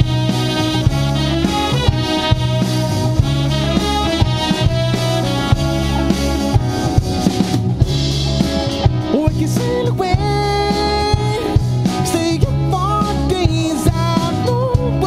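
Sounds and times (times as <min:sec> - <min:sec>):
drum kit beat: 0:00.0 - 0:15.0
live pop band playing: 0:00.0 - 0:15.0
person singing: 0:09.0 - 0:15.0.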